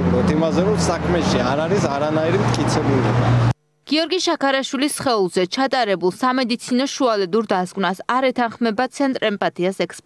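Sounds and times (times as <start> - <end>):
man speaking: 0.0 - 3.2
street traffic hum: 0.0 - 3.6.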